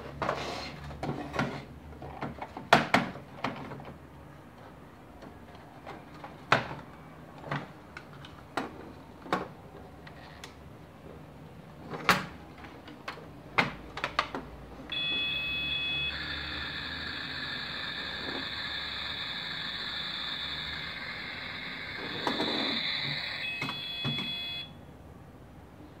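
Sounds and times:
high electronic tone: 14.9 - 24.8
steady sizzling hiss: 15.4 - 24.6.

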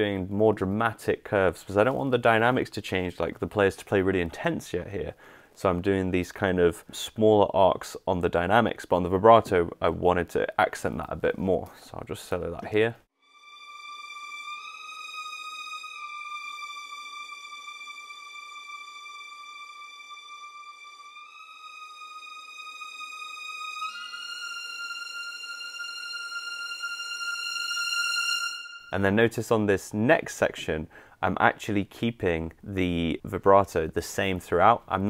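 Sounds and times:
violin section legato line: 13.2 - 29.6.

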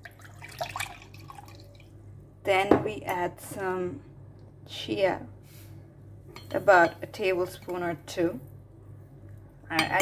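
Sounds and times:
milk pouring into glass mug: 0.0 - 2.0.

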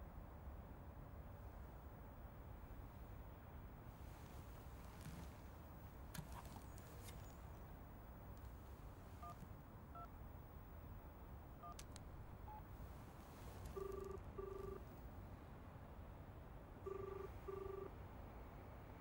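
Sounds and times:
phone keypad beeps: 11.6 - 11.9, 13.7 - 14.8, 16.9 - 17.9
phone ringback tone: 13.7 - 14.9, 16.8 - 17.9.

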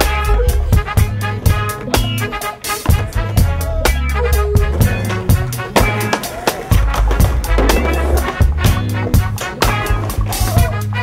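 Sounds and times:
hip-hop music with bass and horns: 0.0 - 11.0
skateboard rolling on concrete: 0.0 - 11.0.

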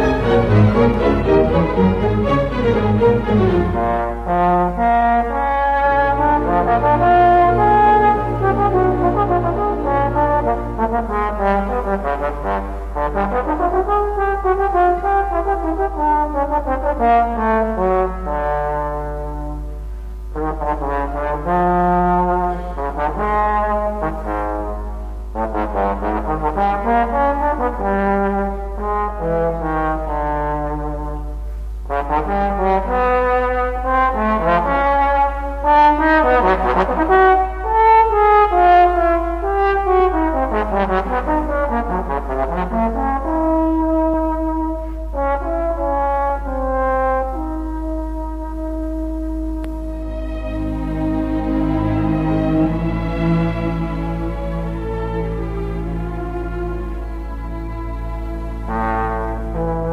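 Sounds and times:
solo trombone: 0.0 - 59.9
string orchestra accompanying: 0.0 - 59.9.

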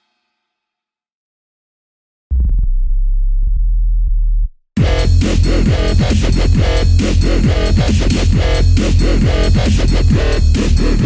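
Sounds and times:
low steady synth bass tone: 2.3 - 11.0.

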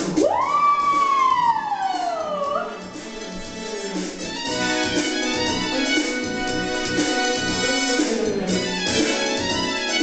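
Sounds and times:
disco backing track: 0.0 - 10.0.

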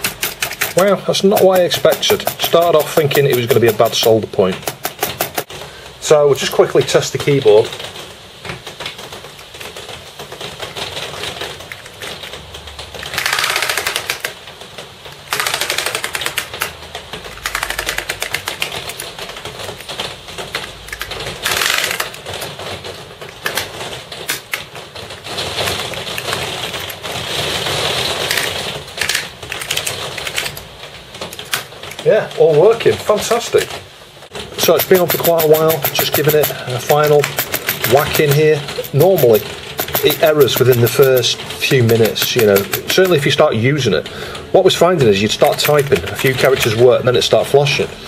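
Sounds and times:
clacking keyboard keystrokes: 0.0 - 5.5, 13.0 - 14.4, 15.2 - 22.6, 34.4 - 44.1, 45.2 - 46.8.

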